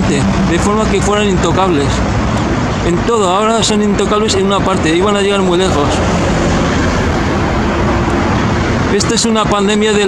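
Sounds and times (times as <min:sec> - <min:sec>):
road traffic rushing past: 0:00.0 - 0:10.0.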